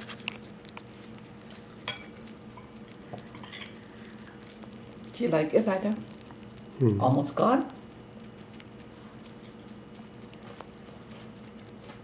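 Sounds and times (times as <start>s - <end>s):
hedgehog chewing clicks: 0.0s - 12.0s
low steady hum: 0.0s - 12.0s.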